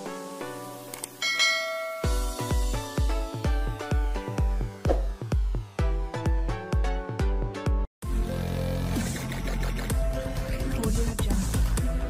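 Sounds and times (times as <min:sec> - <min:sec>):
light plucked music: 0:00.9 - 0:05.3
notification bell chime: 0:01.2 - 0:02.6.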